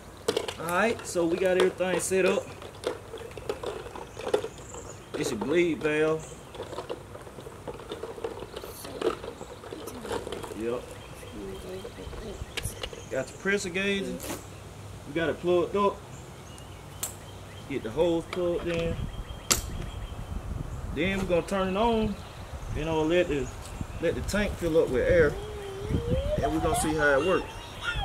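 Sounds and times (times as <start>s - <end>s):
handling noise: 0.0s - 14.4s.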